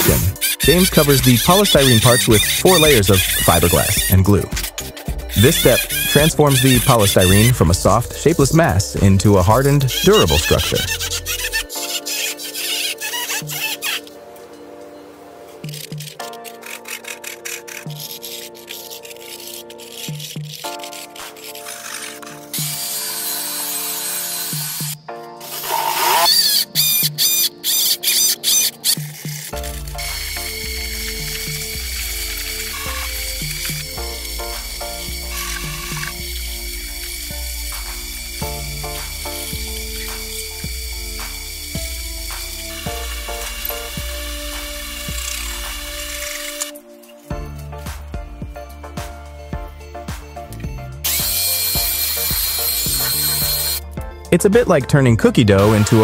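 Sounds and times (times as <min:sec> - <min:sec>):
handsaw cutting foam: 0:00.0 - 0:14.1, 0:15.6 - 0:46.8, 0:51.1 - 0:53.8, 0:55.6 - 0:56.0
background music: 0:00.0 - 0:56.0
steady low beat: 0:02.6 - 0:11.3, 0:29.6 - 0:46.2.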